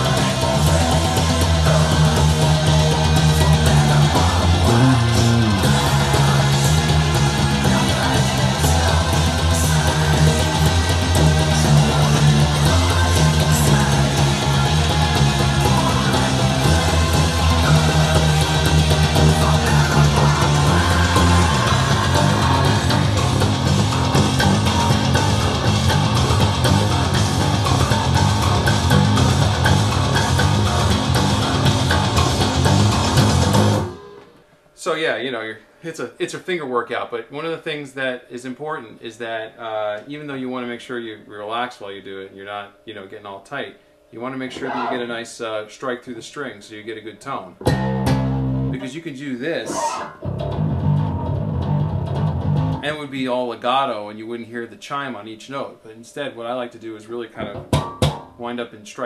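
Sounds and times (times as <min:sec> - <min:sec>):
electric bass fast runs: 0:00.0 - 0:34.0, 0:50.3 - 0:52.8.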